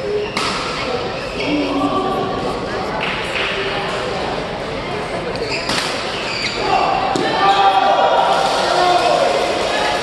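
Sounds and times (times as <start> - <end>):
shoes squeaking on court floor: 5.3 - 7.0.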